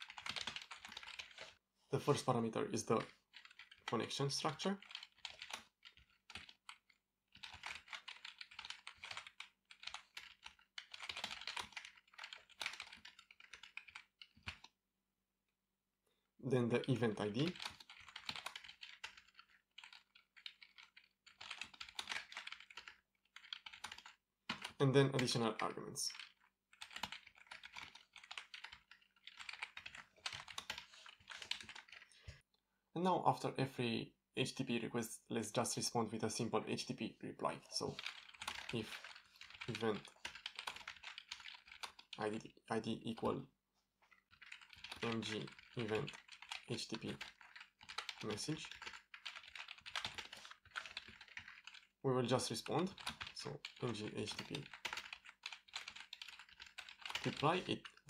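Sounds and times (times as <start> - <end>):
computer keyboard typing: 0.0 - 1.6, 2.9 - 14.7, 16.8 - 32.2, 37.8 - 42.5, 44.1 - 58.0.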